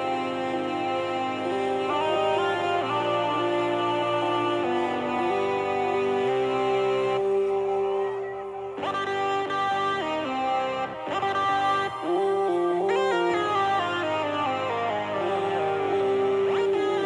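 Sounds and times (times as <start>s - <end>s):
instrumental guitar-like melody: 0.0s - 17.0s.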